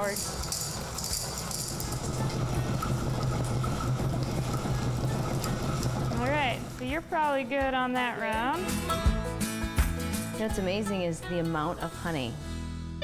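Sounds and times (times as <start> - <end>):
honey extractor whirring: 0.0 - 7.0.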